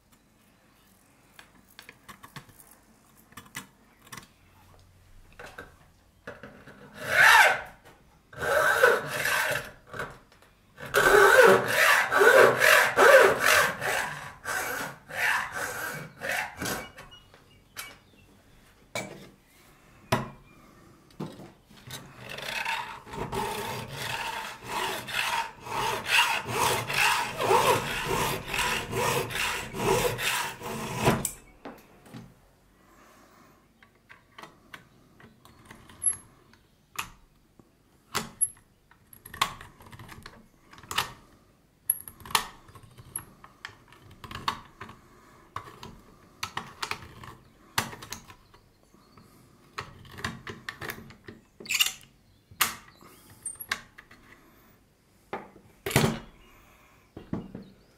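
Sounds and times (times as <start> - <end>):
hacksaw cutting metal: 8.4 - 9.8, 10.8 - 17.0, 22.2 - 31.4.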